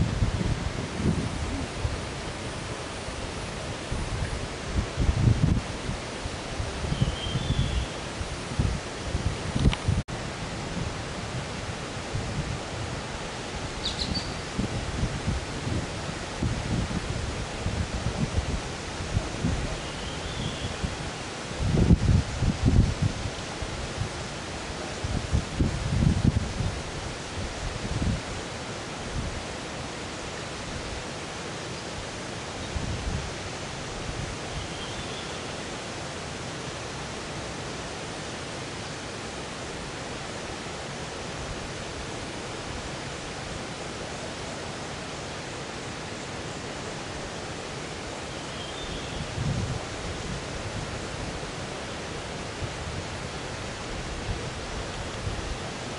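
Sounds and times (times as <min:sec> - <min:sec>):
wind rumble on microphone: 0:00.0 - 0:31.2, 0:32.0 - 0:35.2, 0:46.9 - 0:55.9
outdoor hiss: 0:00.0 - 0:55.9.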